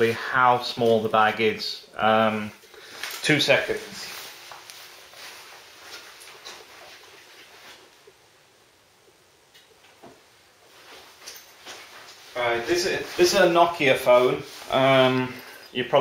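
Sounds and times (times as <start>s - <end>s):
faint rustling: 2.2s - 8.4s, 9.5s - 16.0s.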